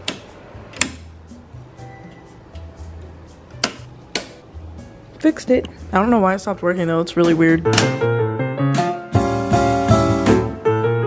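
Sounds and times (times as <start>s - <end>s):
circuit breaker clicks: 3.6s - 4.4s, 7.7s - 8.0s
background music with bass line: 7.5s - 11.0s.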